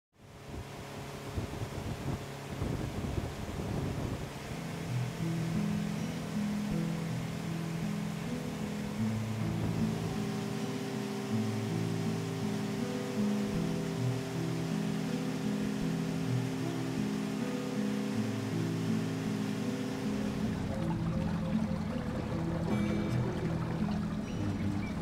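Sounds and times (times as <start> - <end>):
music of low held notes: 0.2 - 25.0
steady rushing ambient noise: 0.3 - 25.0.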